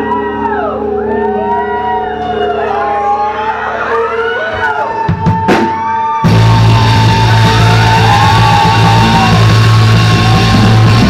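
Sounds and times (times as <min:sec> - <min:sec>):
rock band playing: 0:00.0 - 0:11.0
drum hits: 0:05.1 - 0:11.0.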